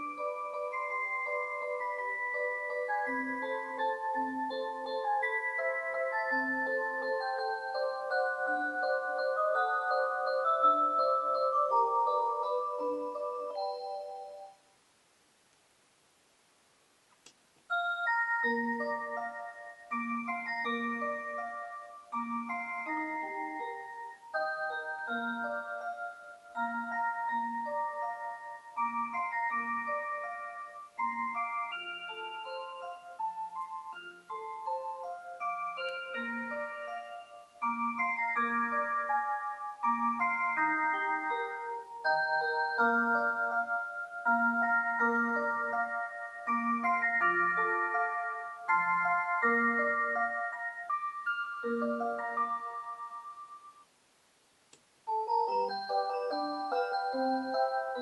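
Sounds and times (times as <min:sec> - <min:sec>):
clock electronic chime melody: 0:00.0 - 0:14.6, 0:17.7 - 0:53.8, 0:55.1 - 0:58.0.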